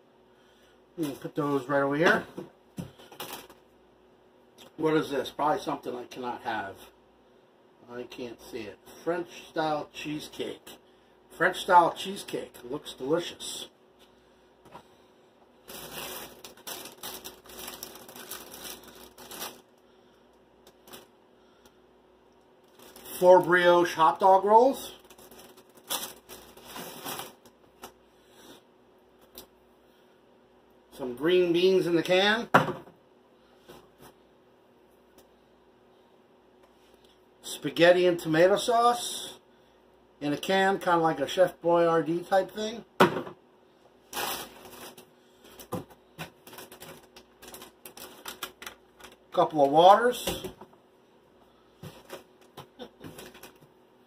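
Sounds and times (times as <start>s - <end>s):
plastic packaging rustling: 3.0s - 3.6s, 15.6s - 19.8s, 20.7s - 21.2s, 22.6s - 28.0s, 44.1s - 49.6s, 51.8s - 53.7s.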